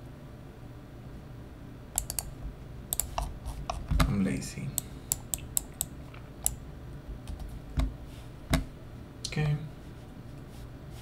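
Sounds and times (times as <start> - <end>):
keyboard key clicks: 2.0 - 2.3.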